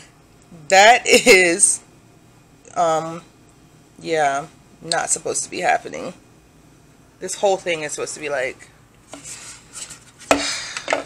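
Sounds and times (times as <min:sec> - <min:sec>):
plastic scraping rub: 0:09.1 - 0:11.0.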